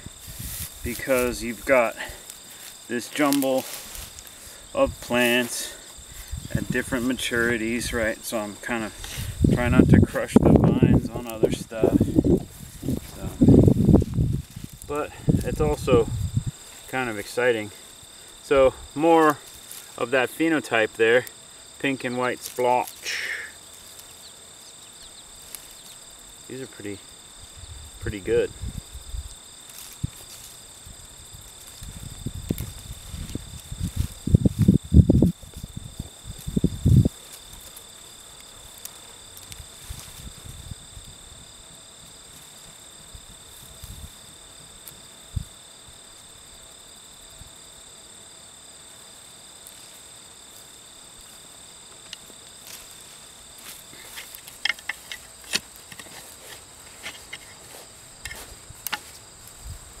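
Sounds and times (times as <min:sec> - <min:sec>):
scrapes and rustles: 0:00.0 - 0:08.0, 0:29.7 - 0:30.7, 0:38.7 - 0:40.6, 0:52.0 - 1:00.0
insects chirping: 0:00.0 - 1:00.0
dull thuds of digging soil: 0:53.6 - 0:59.9.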